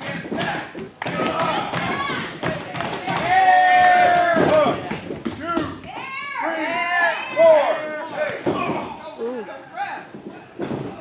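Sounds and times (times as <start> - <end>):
wrestlers' bodies thudding: 0.0 - 9.2, 10.1 - 11.0.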